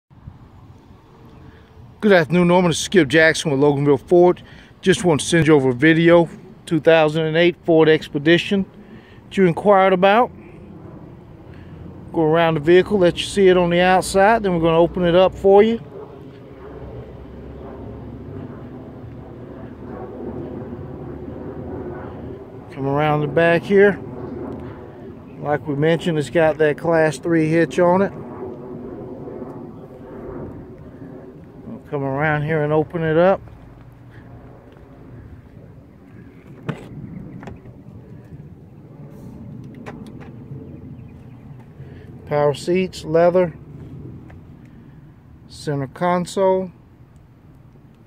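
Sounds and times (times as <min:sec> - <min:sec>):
outdoor background rumble: 0:00.1 - 0:48.0.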